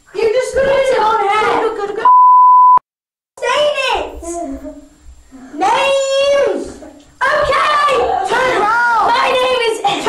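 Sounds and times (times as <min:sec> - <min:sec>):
child's voice: 0:00.1 - 0:02.0, 0:03.4 - 0:10.0
censor bleep: 0:02.0 - 0:02.8.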